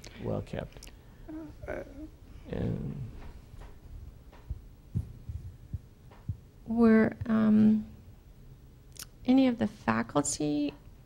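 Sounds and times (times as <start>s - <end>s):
microphone handling thumps: 3.1s - 6.5s.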